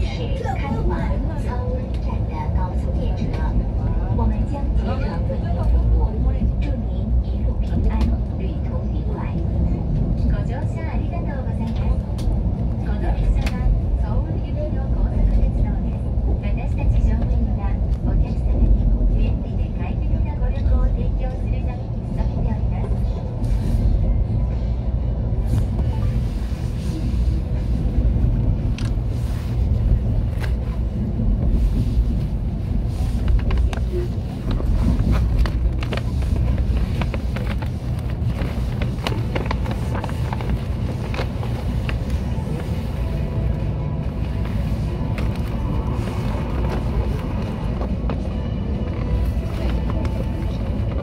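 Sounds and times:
train running gear rumble: 0.0s - 51.0s.

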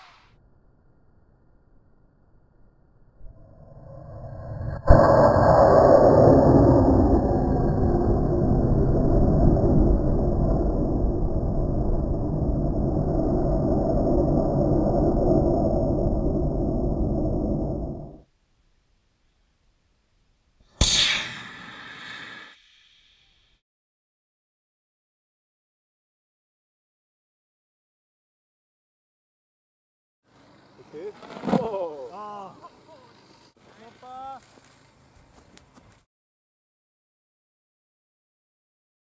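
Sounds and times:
rocket liftoff roar: 3.2s - 18.3s
loud bang: 20.8s - 23.4s
rocket motor hiss: 20.8s - 23.5s.

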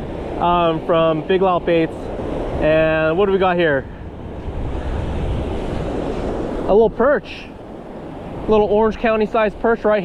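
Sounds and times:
surf washing up beach: 0.0s - 10.0s
wind buffeting microphone: 0.0s - 10.0s.

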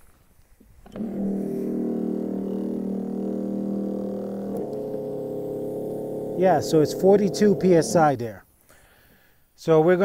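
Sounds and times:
foam generator droning: 0.8s - 8.4s.

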